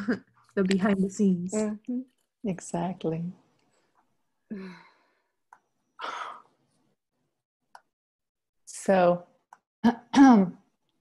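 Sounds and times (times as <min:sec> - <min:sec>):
woman sighing: 0:04.5 - 0:05.2, 0:06.0 - 0:06.5.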